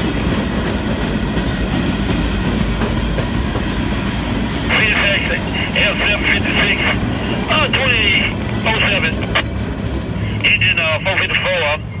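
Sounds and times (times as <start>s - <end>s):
steady low rumble: 0.0s - 12.0s
person speaking: 4.7s - 9.4s.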